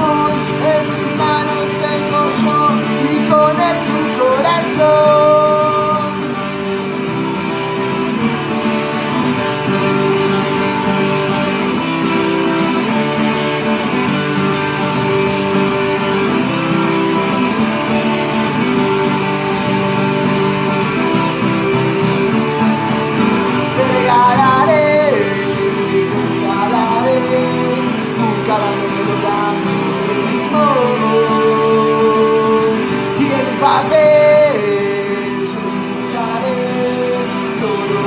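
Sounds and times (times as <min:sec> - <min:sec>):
man singing: 0:00.0 - 0:06.8, 0:22.5 - 0:38.0
acoustic guitar strumming: 0:00.0 - 0:38.0.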